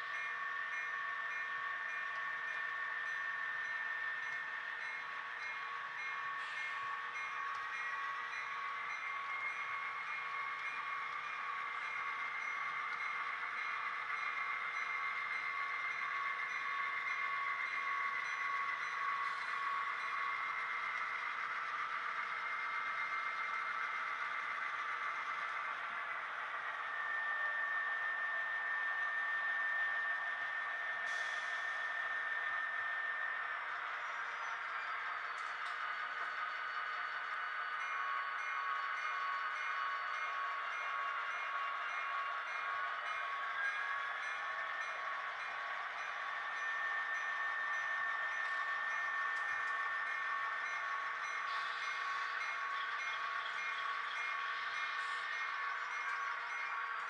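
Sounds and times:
model train rolling: 0.0 - 57.0
whining tones: 0.0 - 57.0.

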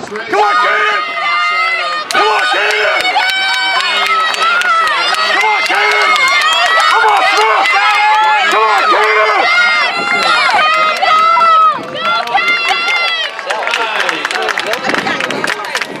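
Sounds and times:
spectators shouting and cheering: 0.0 - 16.0.

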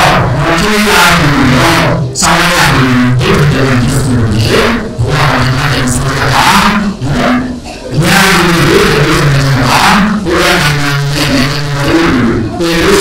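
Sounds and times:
man speaking into a microphone: 0.0 - 13.0.

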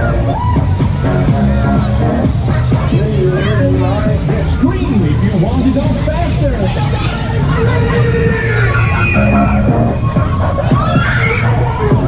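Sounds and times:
crowd chatter: 0.0 - 12.0
loud music: 0.0 - 12.0
low rumble of spinning ride: 0.0 - 12.0.

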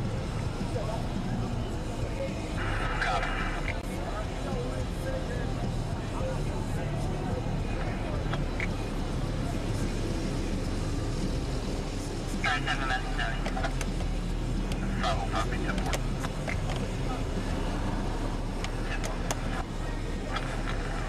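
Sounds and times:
car engine and road rumble: 0.0 - 21.0
voices: 0.0 - 21.0.

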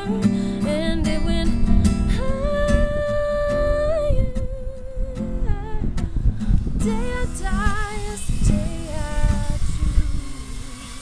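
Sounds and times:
acoustic guitar strumming: 0.0 - 11.0
woman singing: 0.0 - 11.0.

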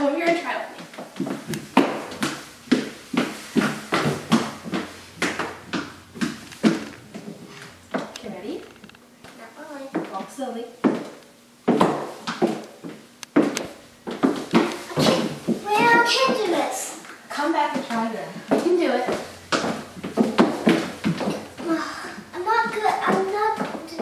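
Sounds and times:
heeled shoes on hardwood floor: 0.2 - 16.4, 18.4 - 21.7
girl talking: 9.3 - 10.8, 14.6 - 19.3, 21.6 - 24.0.

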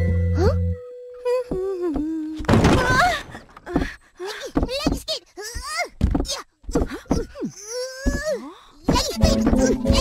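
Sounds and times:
woman moaning and groaning: 0.4 - 4.6, 6.7 - 8.8.

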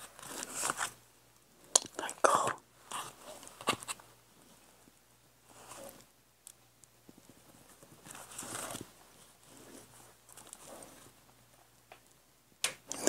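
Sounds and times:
paper rustling: 0.0 - 1.0, 7.1 - 11.2.

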